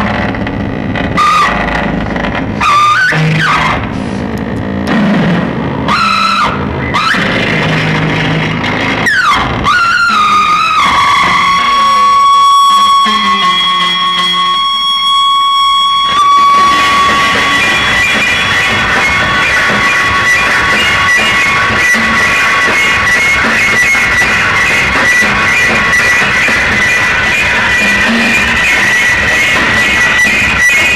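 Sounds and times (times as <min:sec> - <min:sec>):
harsh electronic noise: 0:00.0 - 0:30.9
downward pitch sweep: 0:04.9 - 0:30.9
steady high tone: 0:04.9 - 0:30.9.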